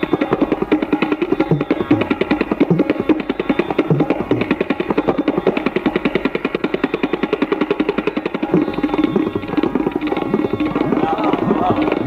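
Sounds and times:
fast tabla strokes: 0:00.0 - 0:12.0.

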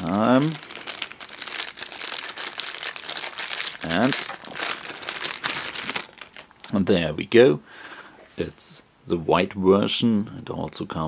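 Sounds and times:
plastic bag crinkling: 0:00.0 - 0:06.8.

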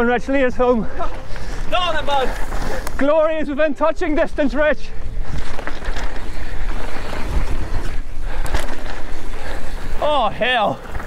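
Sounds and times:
tyres rumbling on dirt trail: 0:00.0 - 0:11.0
wind buffeting microphone: 0:00.5 - 0:11.0
bike rattling clicks: 0:01.2 - 0:03.0, 0:05.0 - 0:10.0.

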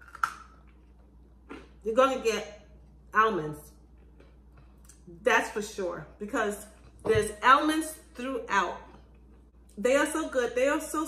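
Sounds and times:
biscuit crunch: 0:00.0 - 0:01.8
woman speaking: 0:01.8 - 0:03.8, 0:05.1 - 0:08.9, 0:09.8 - 0:11.0.

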